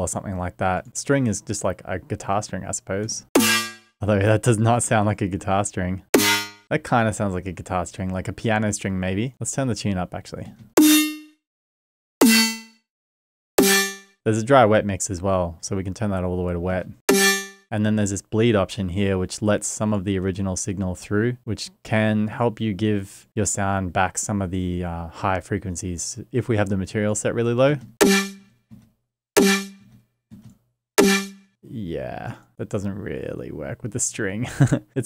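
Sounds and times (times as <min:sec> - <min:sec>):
drum hits with metallic ring: 0:03.4 - 0:03.8, 0:06.2 - 0:06.6
resonant snare drum hits: 0:03.4 - 0:03.8, 0:31.0 - 0:31.4.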